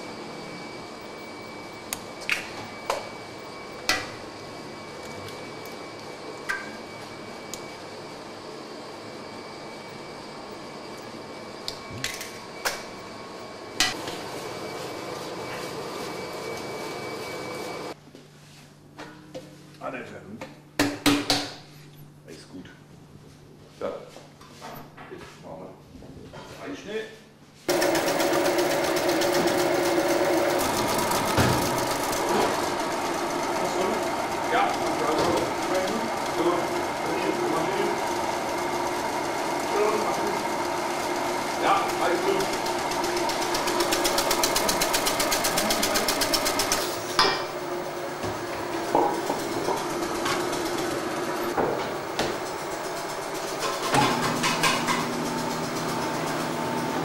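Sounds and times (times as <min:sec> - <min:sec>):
bakery machinery humming and rattling: 0:00.0 - 0:57.0.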